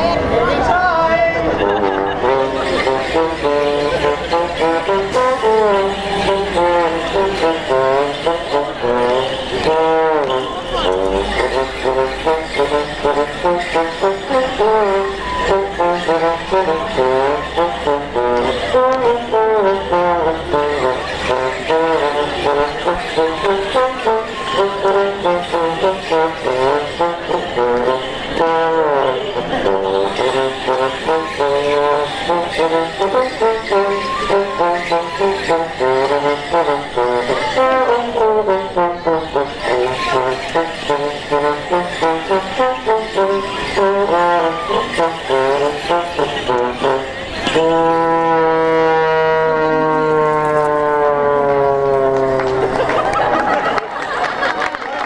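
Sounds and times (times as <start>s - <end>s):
folk dance tune: 0.0s - 55.0s
jingling leg bells: 0.0s - 55.0s.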